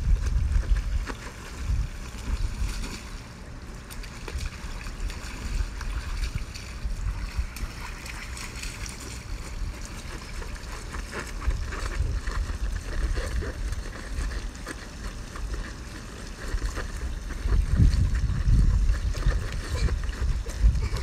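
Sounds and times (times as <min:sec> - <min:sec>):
wind rumbling on microphone: 0:00.0 - 0:03.2, 0:04.0 - 0:21.0.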